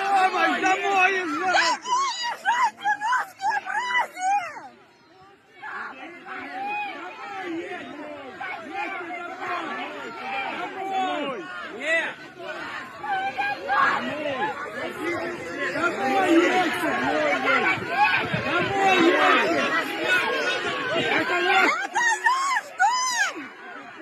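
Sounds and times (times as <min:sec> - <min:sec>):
crowd talking and calling out: 0:00.0 - 0:24.0.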